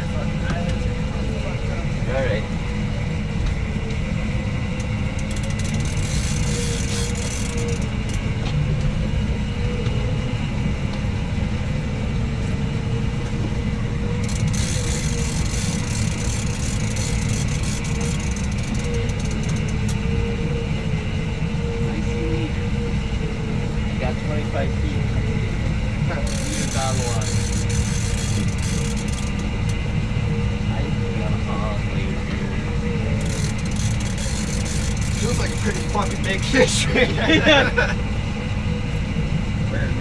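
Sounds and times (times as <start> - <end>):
boat engine running: 0.0 - 40.0.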